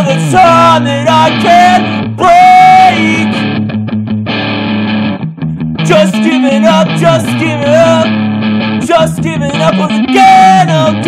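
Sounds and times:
person singing: 0.0s - 3.6s, 5.8s - 8.2s, 8.8s - 11.0s
rock guitar and bass: 0.0s - 11.0s.

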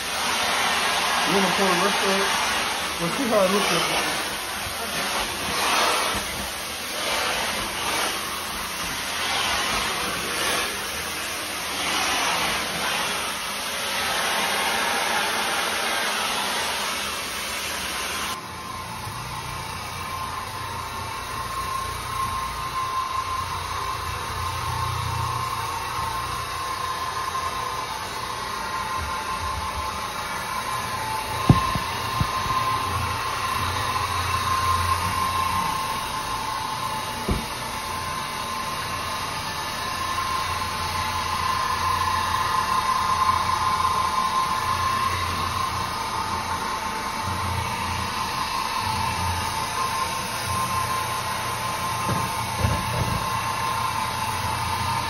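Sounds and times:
floor cleaning tool whirring: 0.0s - 55.0s.

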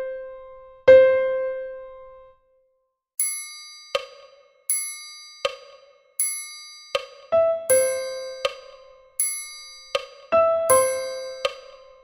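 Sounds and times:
piano accompaniment: 0.0s - 2.4s, 6.9s - 12.0s
metronome clicks: 3.2s - 11.8s
piano note: 7.0s - 12.0s.

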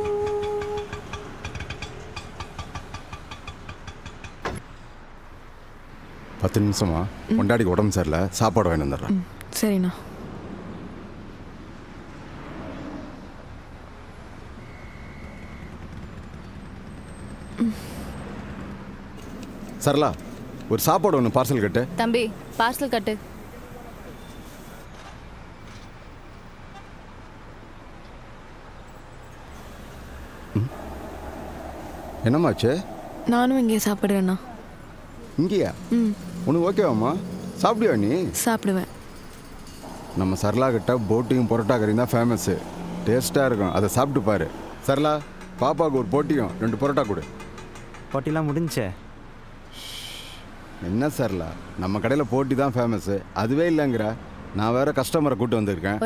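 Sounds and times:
auto-rickshaw engine ticking: 0.0s - 4.6s, 14.4s - 24.4s, 32.8s - 49.8s
street traffic hum: 0.0s - 56.0s.

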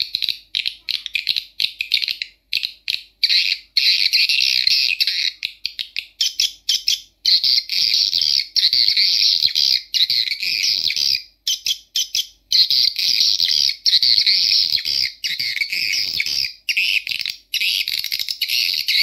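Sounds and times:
high-pitched bird twittering: 0.0s - 19.0s.

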